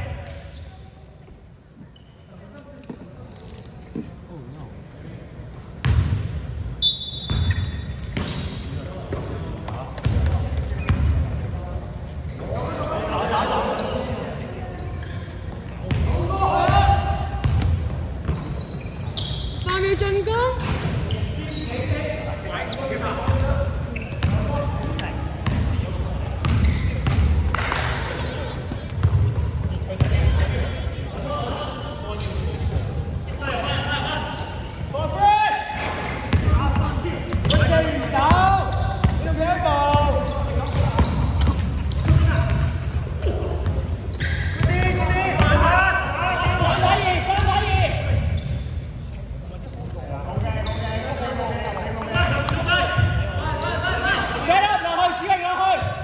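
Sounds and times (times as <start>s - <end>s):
players calling out: 7.3s - 48.6s.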